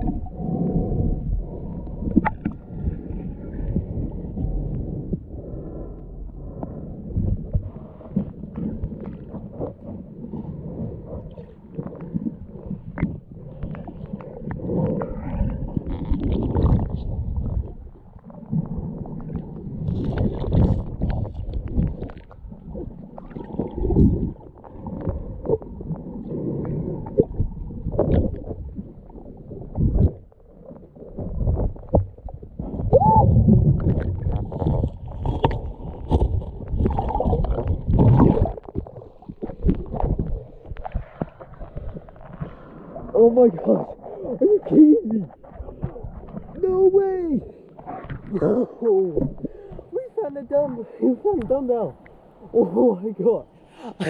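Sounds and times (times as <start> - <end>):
underwater rumble and sloshing: 0.0 - 54.0
stones knocking underwater: 31.3 - 42.3.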